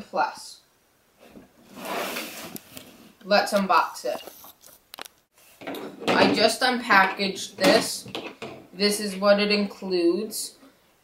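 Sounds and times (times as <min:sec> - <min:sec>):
cardboard box rustling scrape: 0:01.6 - 0:03.2.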